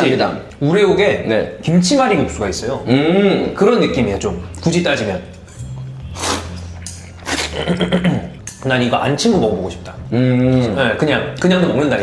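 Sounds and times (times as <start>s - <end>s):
person slurping noodles: 6.0s - 8.0s.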